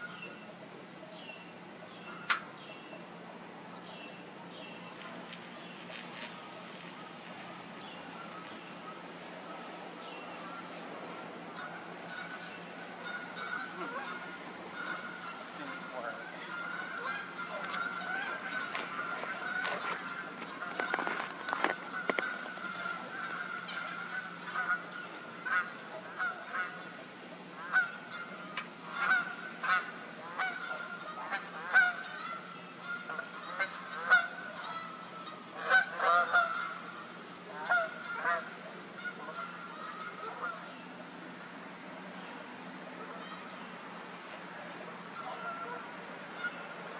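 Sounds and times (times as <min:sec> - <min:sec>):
faint steady background tone: 0:00.0 - 0:46.9
honking bird calls: 0:01.2 - 0:03.0, 0:03.7 - 0:41.3, 0:42.9 - 0:46.9.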